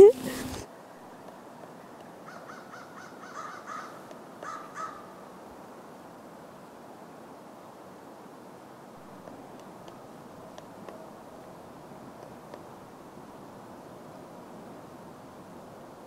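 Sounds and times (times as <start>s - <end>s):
woodpecker calling: 2.2s - 5.1s.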